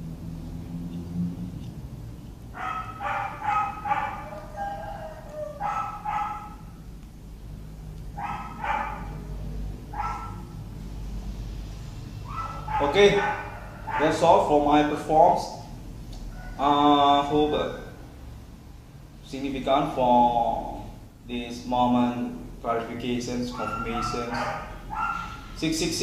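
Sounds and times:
dog barking: 0:02.6 - 0:06.7, 0:08.2 - 0:09.2, 0:09.9 - 0:10.6, 0:12.3 - 0:14.2, 0:23.5 - 0:25.4.

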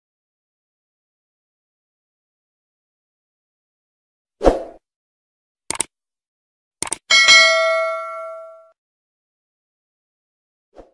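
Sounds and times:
quick double click: 0:06.8 - 0:07.1
notification bell ding: 0:07.1 - 0:08.7.

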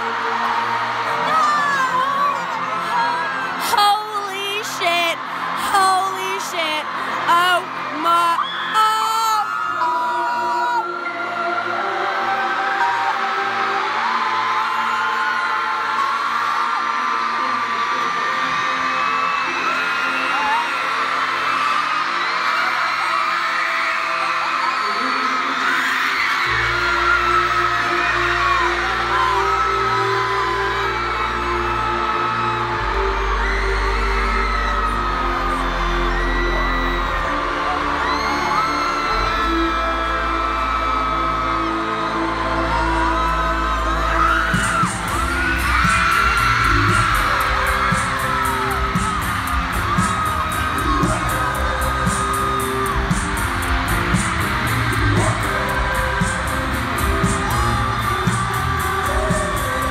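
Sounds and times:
amplified pop music: 0:00.0 - 0:59.9
crowd screaming and whooping: 0:00.0 - 0:59.9
deep bass: 0:26.6 - 0:59.9.

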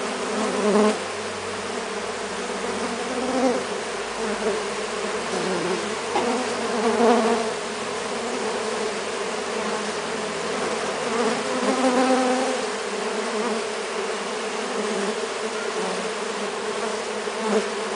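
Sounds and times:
bees buzzing: 0:00.0 - 0:17.9.

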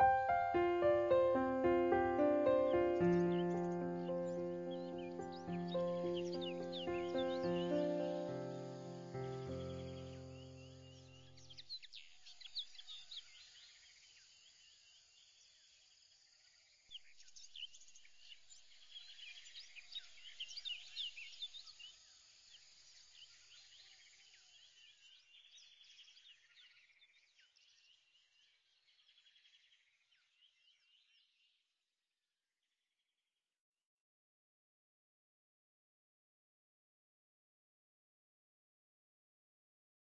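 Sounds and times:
background music: 0:00.0 - 0:11.0
faint high-pitched chirping: 0:00.0 - 0:15.8, 0:16.9 - 0:31.4.

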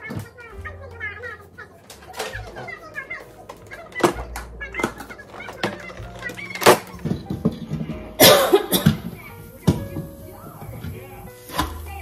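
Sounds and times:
person coughing: 0:08.2 - 0:09.1.

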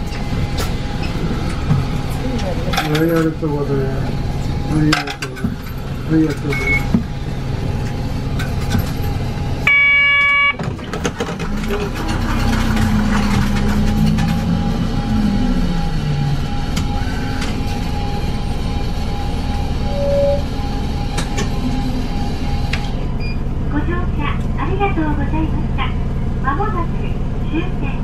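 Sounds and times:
bus engine running: 0:00.0 - 0:28.0
short electronic beep: 0:09.7 - 0:10.6, 0:19.8 - 0:20.7.

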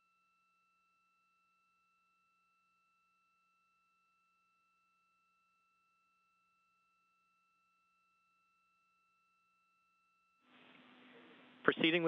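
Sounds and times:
faint steady electronic tones: 0:00.0 - 0:12.0.

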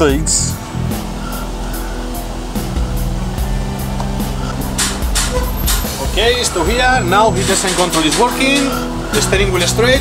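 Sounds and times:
car engine running: 0:00.0 - 0:10.0
music with steady beat: 0:00.0 - 0:10.0.

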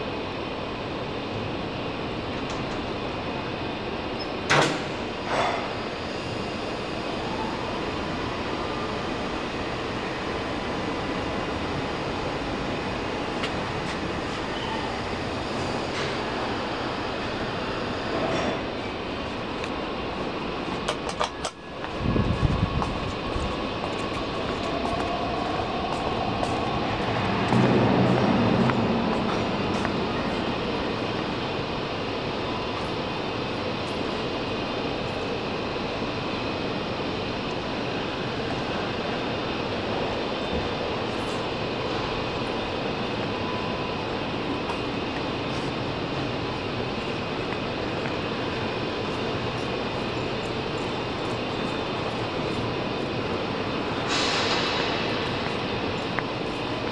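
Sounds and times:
lift car humming: 0:00.0 - 0:56.9
station hall background noise: 0:00.0 - 0:56.9
rising whine: 0:21.7 - 0:32.5.

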